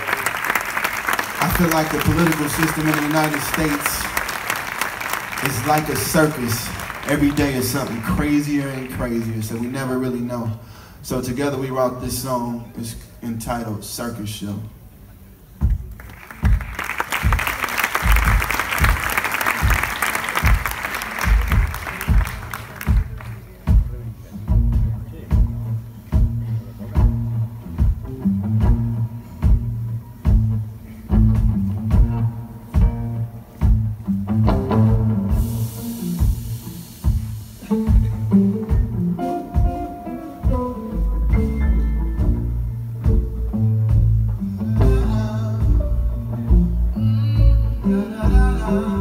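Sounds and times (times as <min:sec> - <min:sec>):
audience applause: 0:00.0 - 0:09.8, 0:15.9 - 0:23.7
band chords: 0:01.0 - 0:10.4, 0:16.5 - 0:49.0.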